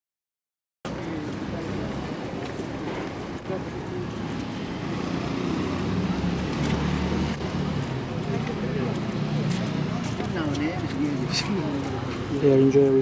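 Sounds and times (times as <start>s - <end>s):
people chattering outdoors: 0.8s - 13.0s
road traffic: 0.9s - 13.0s
vehicle engine hum: 0.9s - 13.0s.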